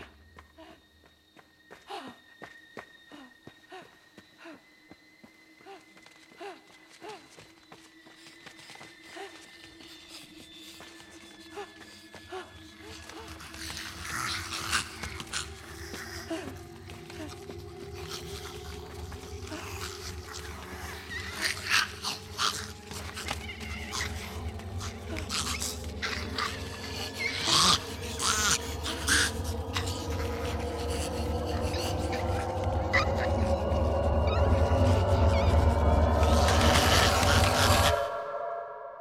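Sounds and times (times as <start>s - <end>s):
eerie score of sustained tones: 0.0s - 39.0s
zombie cries: 12.7s - 38.0s.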